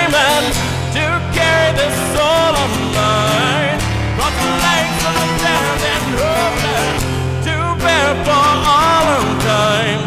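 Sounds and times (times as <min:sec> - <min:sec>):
bending guitar melody: 0:00.0 - 0:10.0
guitars: 0:00.0 - 0:10.0.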